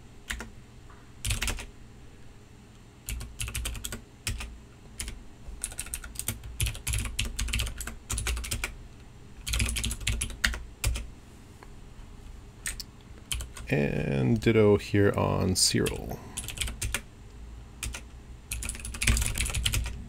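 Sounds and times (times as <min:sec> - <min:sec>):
typing on computer keyboard: 0:00.3 - 0:00.5, 0:01.2 - 0:01.7, 0:03.1 - 0:08.7, 0:09.4 - 0:11.0, 0:12.6 - 0:13.7, 0:15.9 - 0:17.0, 0:17.8 - 0:20.0.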